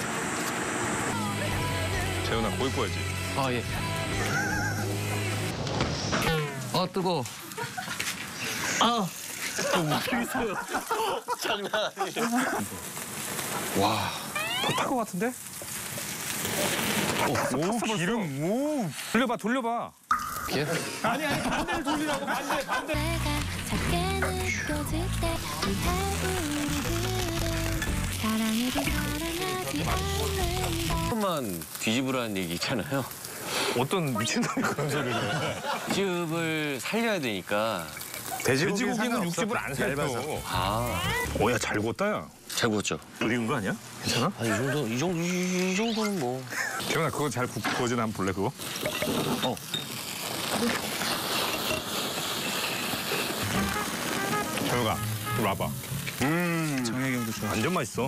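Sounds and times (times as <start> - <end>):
meat sizzling over a fire: 0.0 - 58.0
background music: 1.1 - 5.8, 22.9 - 31.1.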